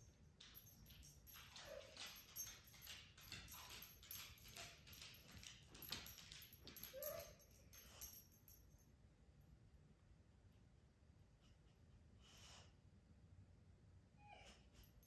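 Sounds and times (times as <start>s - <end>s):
dog claws clicking on wooden floor: 0.3s - 7.9s
dog whining: 6.8s - 7.5s, 14.2s - 15.0s.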